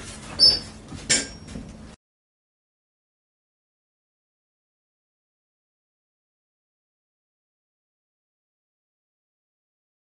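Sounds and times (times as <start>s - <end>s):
short high squeak: 0.4s - 1.5s.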